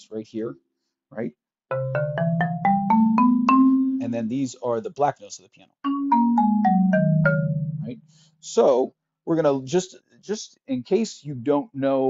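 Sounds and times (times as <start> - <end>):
marimba notes descending: 1.7 - 4.3, 5.9 - 8.1.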